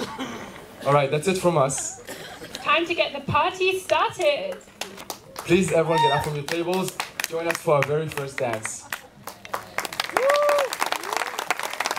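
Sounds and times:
guests applauding: 4.8s - 11.9s
long held cheer: 10.0s - 11.9s.

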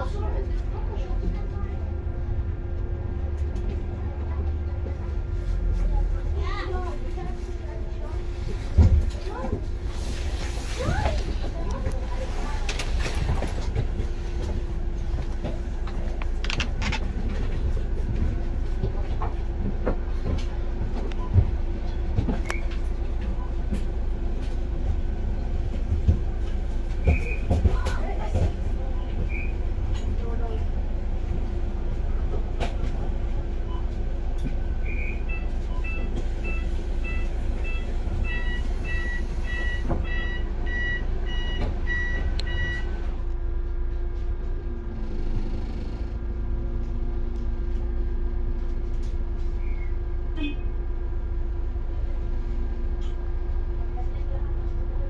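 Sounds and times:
bus engine rumble: 0.0s - 55.0s.

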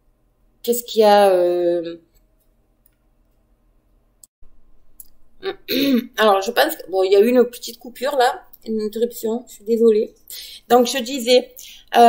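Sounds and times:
woman talking: 0.7s - 2.0s, 5.5s - 12.0s.

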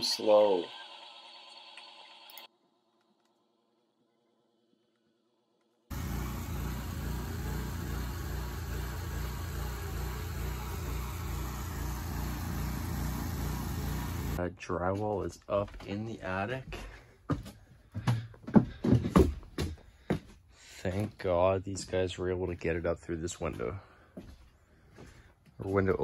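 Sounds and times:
crane engine running: 5.9s - 14.4s.

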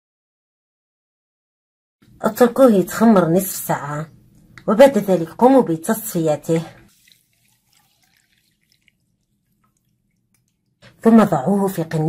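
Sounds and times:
coffee dripping into glass bowl: 6.9s - 10.8s.

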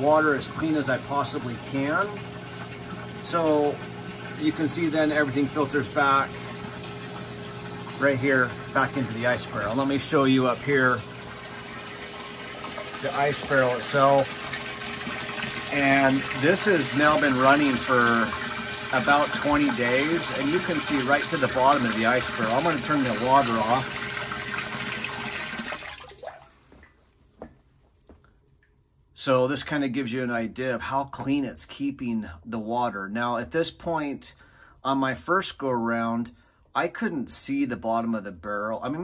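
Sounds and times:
water splashing into barrel: 0.0s - 28.8s.

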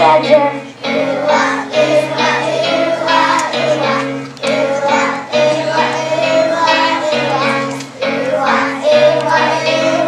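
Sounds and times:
children singing: 0.0s - 10.0s
musical accompaniment: 0.0s - 10.0s.

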